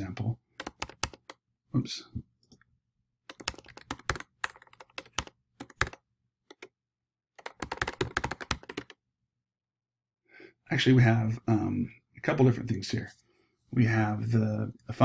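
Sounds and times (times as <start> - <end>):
typing on computer keyboard: 0.1 - 1.4, 3.3 - 6.7, 7.4 - 9.0.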